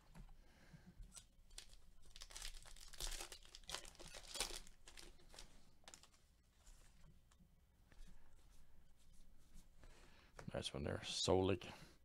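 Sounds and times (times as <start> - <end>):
trading cards rustling: 1.2 - 6.9.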